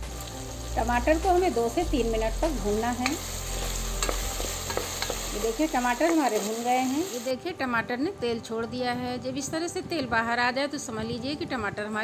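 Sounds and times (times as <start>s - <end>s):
tomatoes frying in hot oil: 0.0s - 7.4s
wooden spoon stirring: 3.0s - 6.5s.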